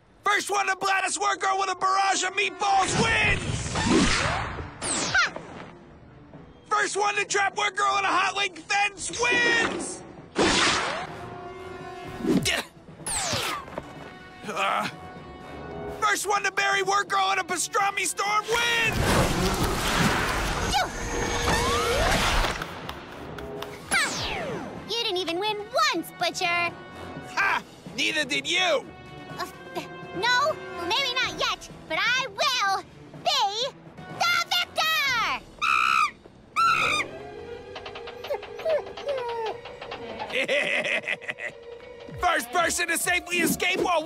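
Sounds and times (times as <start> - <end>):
cartoon background music: 0.3 - 44.0
cartoon monkey cries: 35.6 - 37.1, 38.2 - 39.8.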